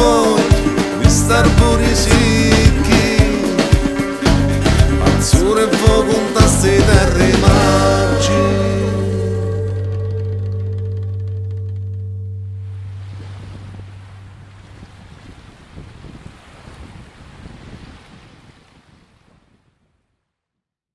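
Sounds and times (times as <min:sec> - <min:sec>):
sea surf on rocky shore: 0:00.0 - 0:09.9, 0:12.6 - 0:19.8
folk song held chord: 0:00.0 - 0:13.2.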